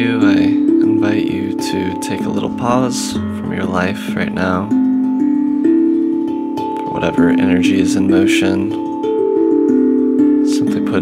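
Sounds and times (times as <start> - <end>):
steel tongue drum notes: 0.0 - 11.0.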